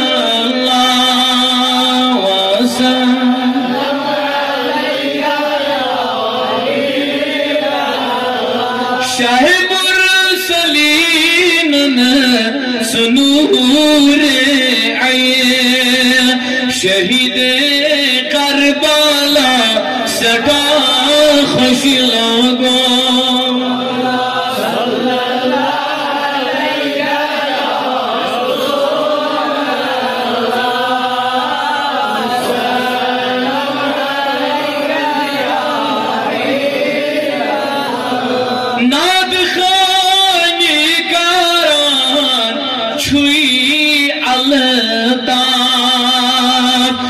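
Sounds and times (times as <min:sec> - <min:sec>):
man chanting in long notes: 0:00.0 - 0:04.0, 0:08.9 - 0:26.0
man chanting into a microphone: 0:00.0 - 0:47.0.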